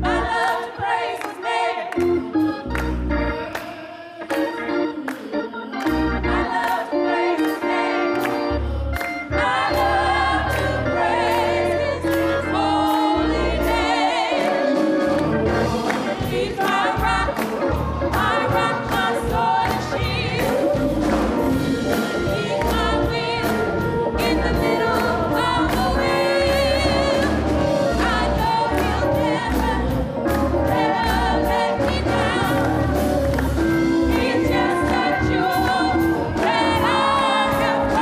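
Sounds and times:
keyboard accompaniment: 0.0 - 38.0
women's choir singing gospel: 0.0 - 38.0
handclaps: 5.1 - 6.0, 15.2 - 18.3, 32.6 - 33.6.

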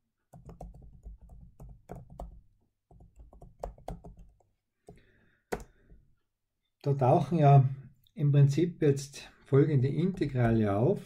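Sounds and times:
computer keyboard typing: 0.3 - 5.7.

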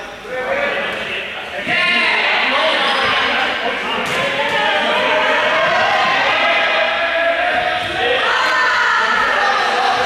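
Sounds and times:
players shouting in sports hall: 1.6 - 10.0.

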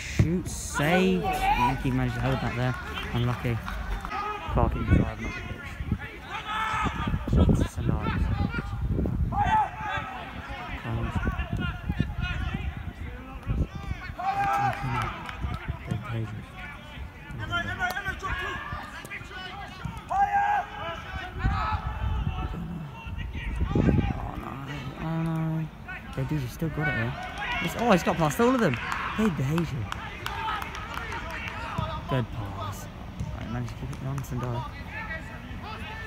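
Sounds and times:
players and spectators shouting: 0.0 - 36.0.

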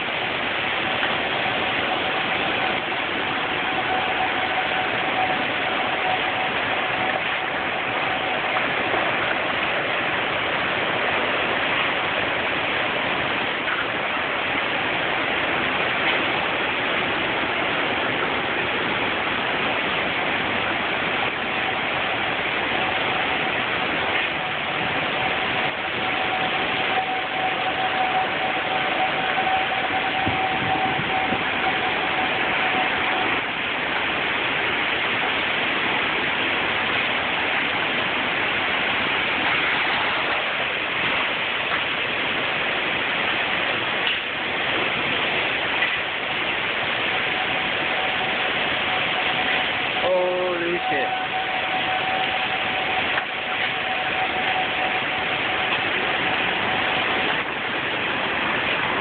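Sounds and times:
faint steady tone: 0.0 - 59.0
heavy rain and strong wind: 0.0 - 59.0.

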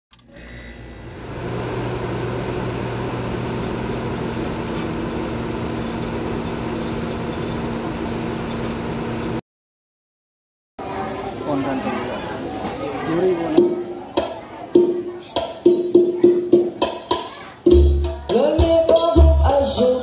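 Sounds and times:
noisy drone with low hum: 0.1 - 9.4.

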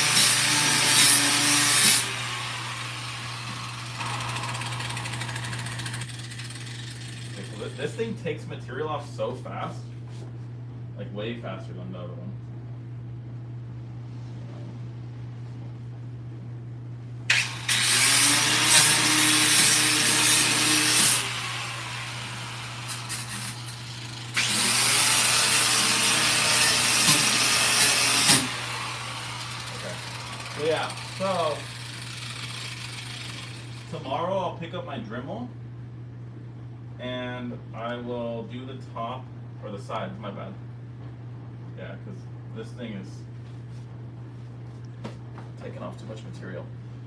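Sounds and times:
angle grinder grinding metal: 0.0 - 7.9, 17.3 - 34.1.

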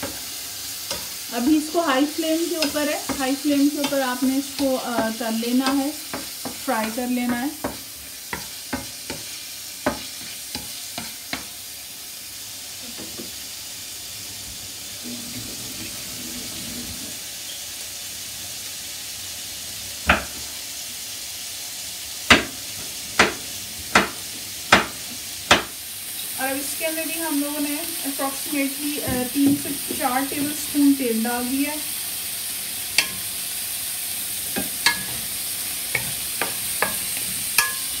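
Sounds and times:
meat sizzling in oil: 0.0 - 38.0
wooden spatula knocking pan: 1.7 - 11.5, 20.1 - 20.5, 22.3 - 25.8.

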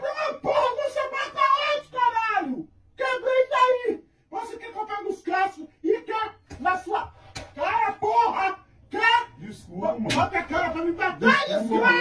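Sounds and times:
woman shouting angrily: 11.0 - 12.0.

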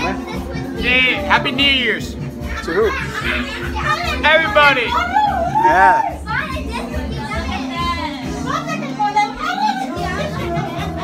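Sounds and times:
music playing: 0.0 - 11.0.

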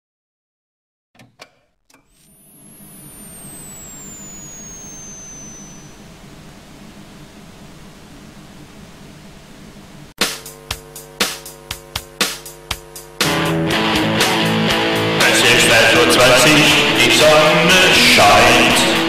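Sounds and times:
low hum: 2.0 - 17.2
high gliding whistles: 2.2 - 6.7
white noise hiss: 2.2 - 19.0.

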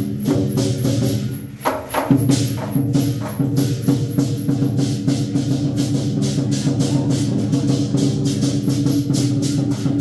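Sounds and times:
big drum beating: 0.0 - 10.0
cymbals clashing: 0.0 - 10.0.

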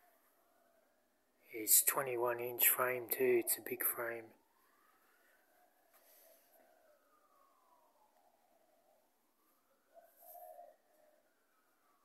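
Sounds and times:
distant siren wailing: 0.0 - 12.0.

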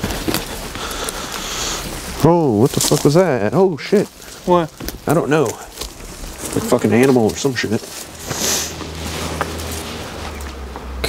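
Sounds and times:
footsteps through dry weeds: 0.0 - 11.0.

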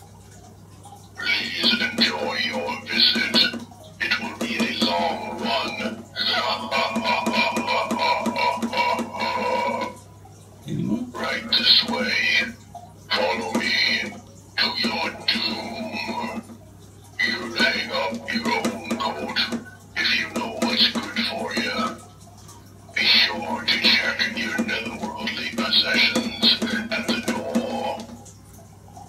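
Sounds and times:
recorded spoken phrases: 1.2 - 10.0, 10.6 - 16.5, 17.2 - 22.1, 23.0 - 28.2.

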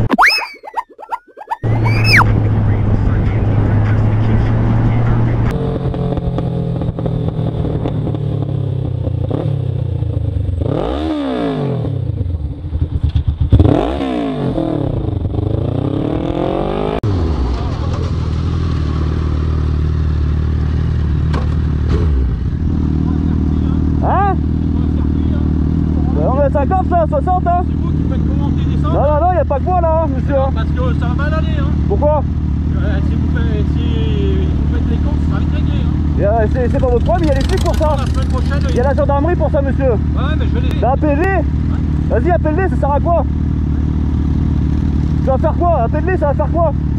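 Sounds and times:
motorcycle engine revving: 1.7 - 46.9.

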